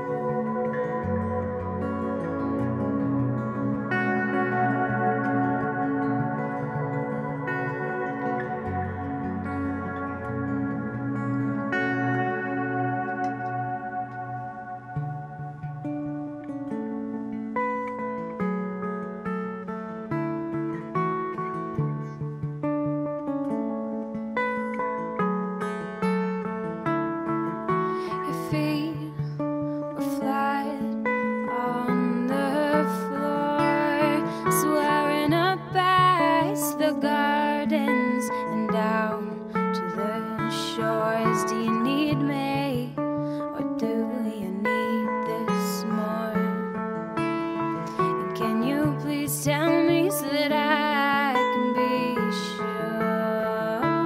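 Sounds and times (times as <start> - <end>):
acoustic guitar with reverb: 0.0 - 54.0
woman singing: 27.8 - 54.0.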